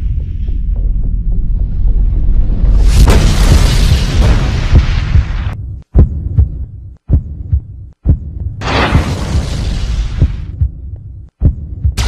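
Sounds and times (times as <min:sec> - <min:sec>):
deep pulsing thuds: 0:00.0 - 0:12.0.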